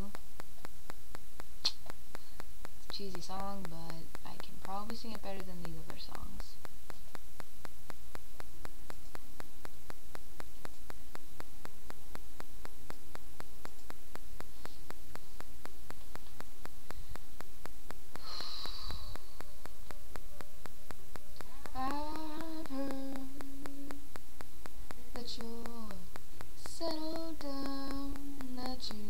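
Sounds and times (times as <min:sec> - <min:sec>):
microphone hiss: 0:00.0 - 0:29.0.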